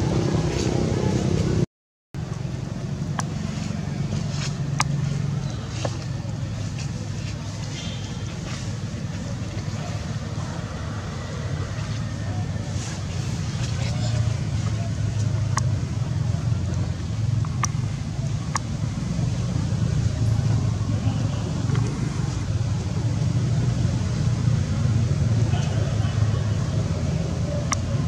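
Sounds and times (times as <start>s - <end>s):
low motor rumble: 2.2s - 28.0s.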